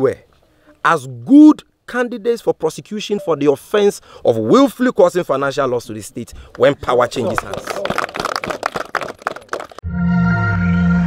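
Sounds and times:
people clapping: 6.5 - 9.8.

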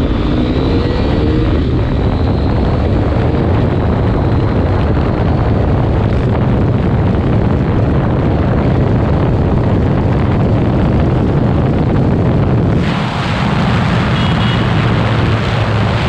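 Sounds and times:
motorcycle engine at speed: 0.0 - 16.0
wind rush on microphone: 0.0 - 16.0.

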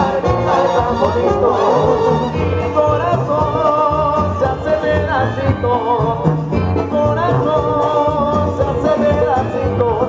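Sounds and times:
brass band playing: 0.0 - 9.7
man singing: 0.0 - 10.0
tuba bass line: 0.0 - 10.0.

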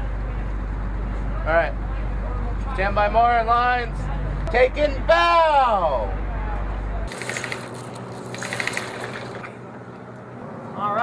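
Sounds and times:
outdoor ambience: 0.0 - 11.0
steady low hum: 0.0 - 11.0
fast clicking rattle: 7.1 - 9.6.

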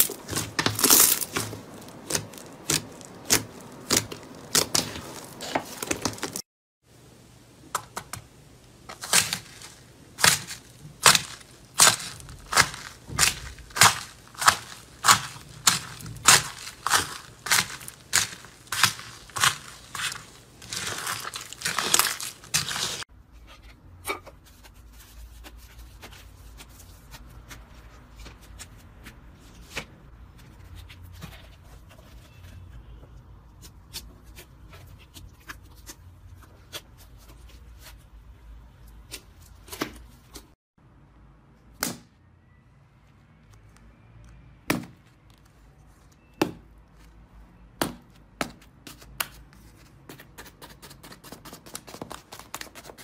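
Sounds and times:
crunchy slime crackling: 0.0 - 6.5, 8.8 - 23.1
slime clicks and crackles: 9.0 - 23.0.

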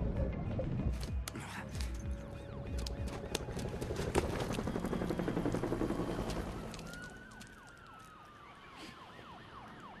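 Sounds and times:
siren wailing: 4.9 - 10.0
yelping siren: 6.5 - 10.0.

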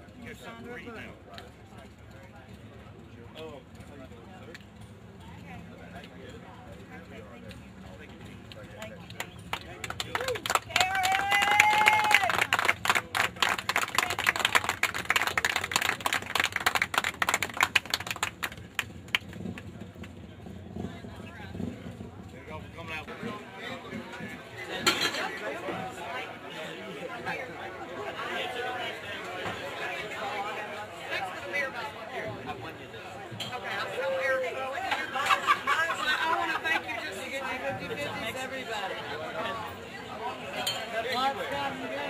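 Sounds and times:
background chatter: 0.0 - 42.0
small group applauding: 8.5 - 20.2
person cheering: 10.2 - 12.3.

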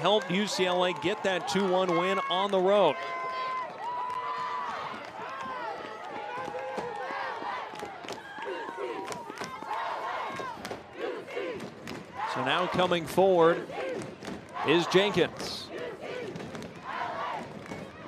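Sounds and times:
crowd shouting in stadium: 0.0 - 18.0.

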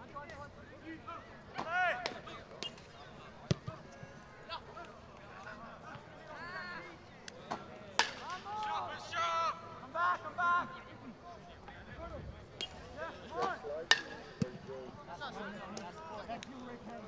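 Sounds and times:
players shouting: 0.0 - 17.0.

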